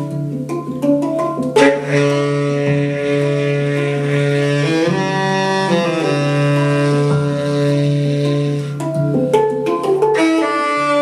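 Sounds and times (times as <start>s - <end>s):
hang drum tones: 0.0s - 11.0s.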